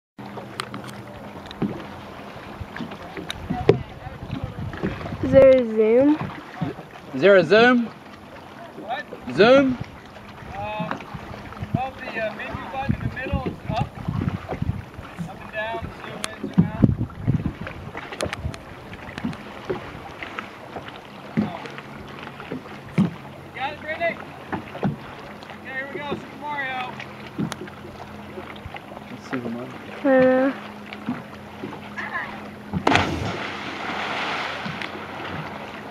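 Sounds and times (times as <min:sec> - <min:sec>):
water slapping against boat: 0:00.2 - 0:35.9
knocks against hull: 0:01.4 - 0:01.9, 0:02.7 - 0:06.8, 0:16.3 - 0:19.9, 0:21.3 - 0:21.8, 0:22.5 - 0:23.2, 0:24.5 - 0:25.1, 0:27.3 - 0:27.7, 0:32.7 - 0:35.6
low hum: 0:26.8 - 0:35.9.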